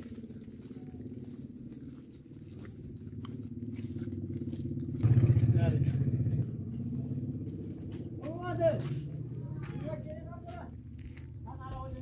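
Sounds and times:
engine running: 0.0s - 11.5s.

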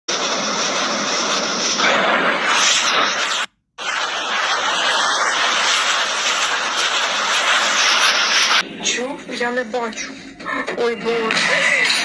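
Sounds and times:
rocket motors roaring: 0.1s - 12.0s.

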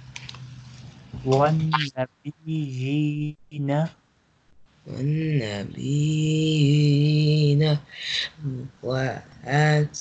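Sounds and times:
person chanting a recitation: 1.2s - 4.0s, 4.9s - 10.0s.

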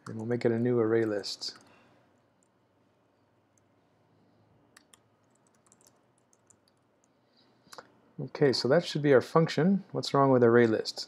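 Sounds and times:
keyboard typing clicks: 4.8s - 6.8s.

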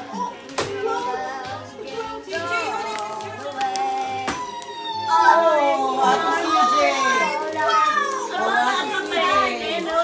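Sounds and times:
excited chatter of voices: 0.0s - 10.0s.

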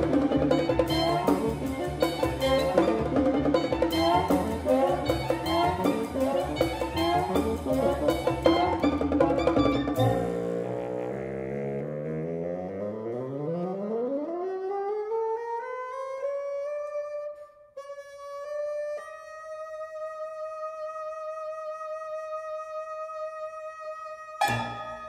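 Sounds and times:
amplified bassoon sliding upward: 0.0s - 21.5s.

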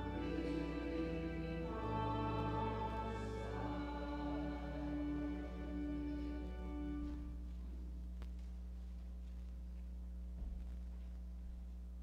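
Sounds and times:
choir singing a hymn: 0.0s - 7.3s
church organ chords: 0.0s - 7.5s.

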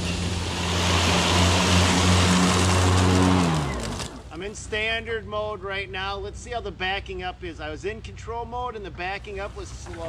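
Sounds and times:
electric motor hum: 0.0s - 4.3s
mower blades whooshing: 0.0s - 4.5s.

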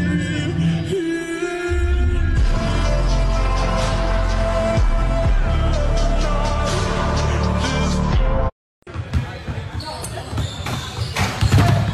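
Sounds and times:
basketball bouncing on gym floor: 8.9s - 11.9s.

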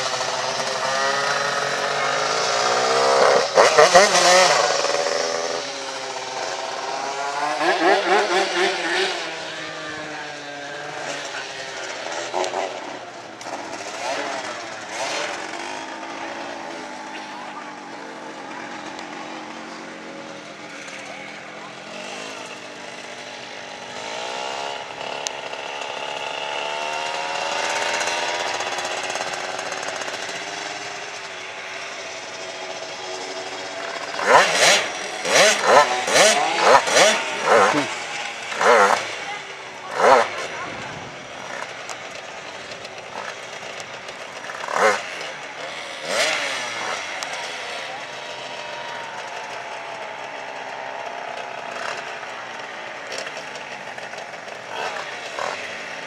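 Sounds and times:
motorcycle engines accelerating: 0.0s - 56.0s.

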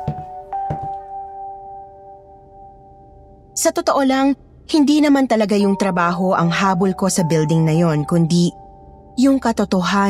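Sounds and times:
held bell-like chord: 0.0s - 3.6s, 5.6s - 9.2s.

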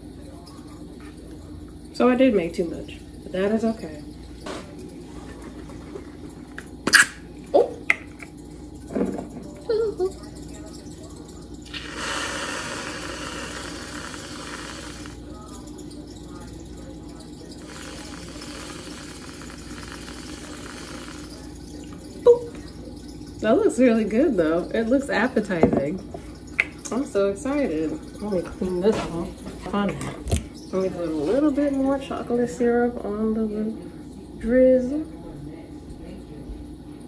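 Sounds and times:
aerosol cream spray hiss: 11.7s - 15.2s.

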